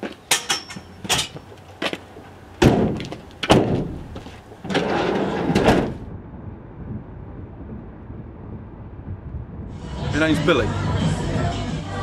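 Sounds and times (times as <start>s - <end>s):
door rattling: 2.6s - 6.0s
van doors slamming: 2.6s - 6.1s
muffled vehicle driving: 2.9s - 10.2s.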